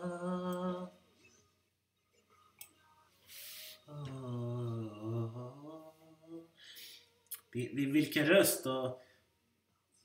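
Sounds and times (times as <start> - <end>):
breath-like hiss: 3.2 - 3.9
man humming a held note: 3.9 - 6.4.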